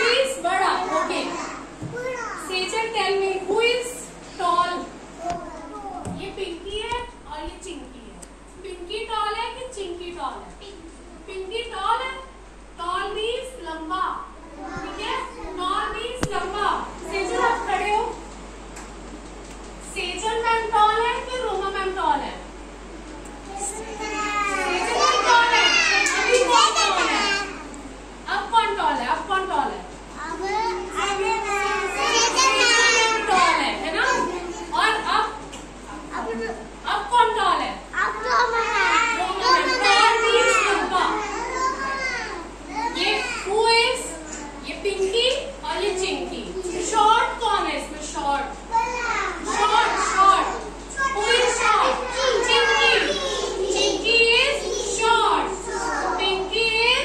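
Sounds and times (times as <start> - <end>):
young children speaking: 0.0 - 7.8, 8.6 - 12.4, 13.0 - 18.3, 20.2 - 28.7, 29.7 - 57.0
children calling out together: 23.2 - 27.8, 30.2 - 34.8, 37.9 - 44.6, 48.6 - 56.5.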